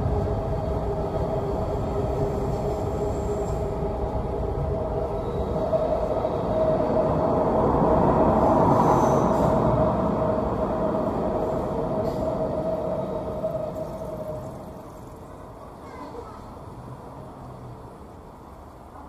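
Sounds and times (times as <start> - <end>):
train rumbling over bridge: 0.0 - 19.0.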